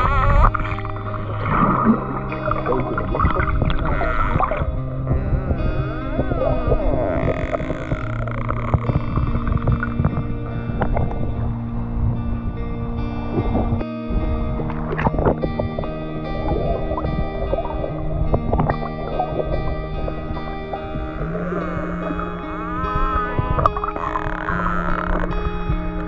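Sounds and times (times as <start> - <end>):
sustained chord background music: 0.0 - 26.0.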